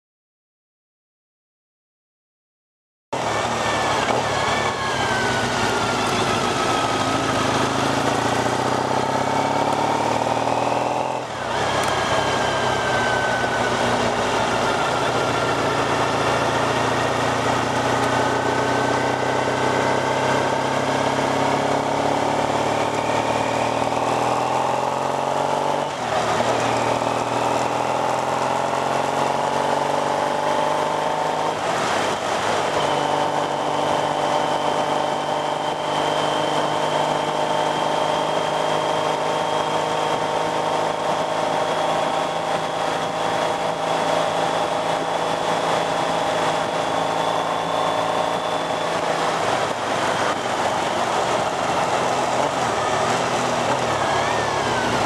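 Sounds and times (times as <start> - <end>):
motorcycle engine running: 3.2 - 55.0
wind and road noise: 3.2 - 55.0.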